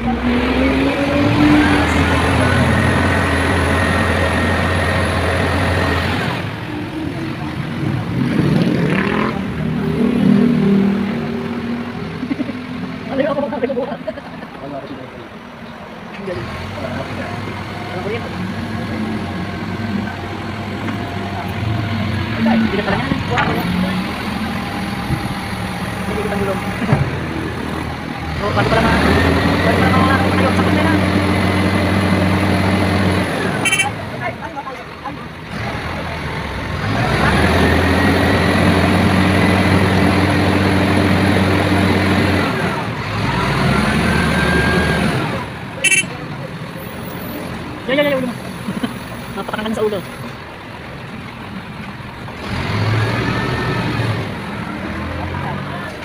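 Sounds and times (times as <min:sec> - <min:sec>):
diesel engine revving: 0:00.0 - 0:13.9, 0:16.2 - 0:56.0.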